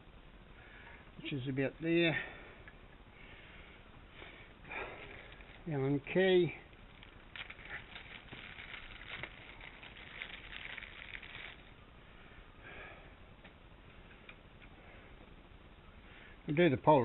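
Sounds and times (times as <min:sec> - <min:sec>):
plastic bags crinkling: 0:04.7 - 0:11.8.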